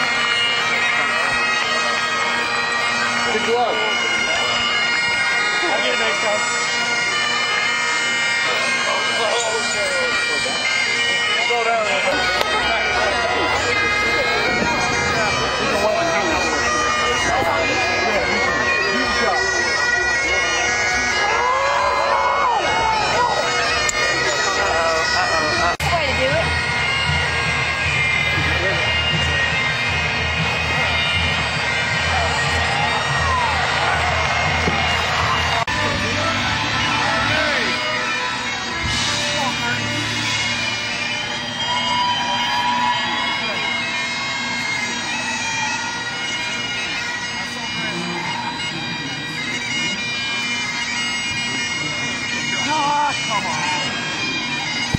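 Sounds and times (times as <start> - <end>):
bagpipes playing: 0.0 - 54.9
crowd voices: 0.0 - 54.9.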